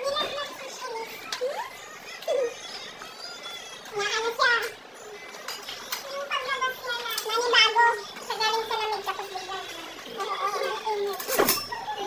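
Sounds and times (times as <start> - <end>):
chatter of high-pitched voices: 0.0 - 12.0.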